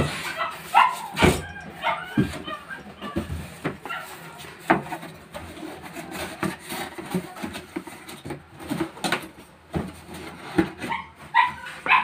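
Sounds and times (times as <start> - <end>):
cardboard box being folded: 2.3 - 11.8.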